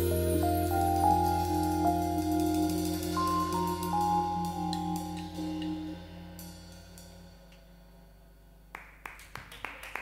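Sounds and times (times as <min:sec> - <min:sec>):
sparse hand claps: 0:08.7 - 0:10.0.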